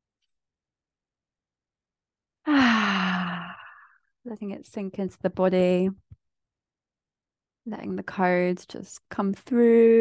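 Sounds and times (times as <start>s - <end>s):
woman sighing: 2.5s - 4.0s.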